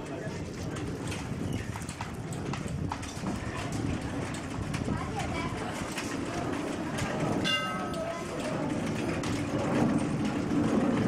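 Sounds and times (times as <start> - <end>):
low rumbling background noise: 0.0 - 11.0
voices: 2.9 - 10.4.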